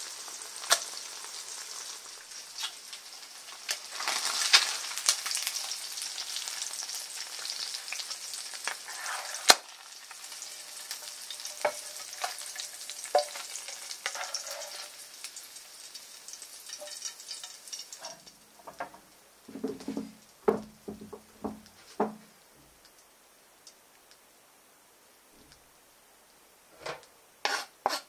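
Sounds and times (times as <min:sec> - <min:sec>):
fat sizzling in a frying pan: 0:00.0 - 0:23.8, 0:26.5 - 0:28.0
spatula knocking and scraping pan: 0:10.3 - 0:15.0, 0:16.7 - 0:22.3, 0:26.8 - 0:28.0.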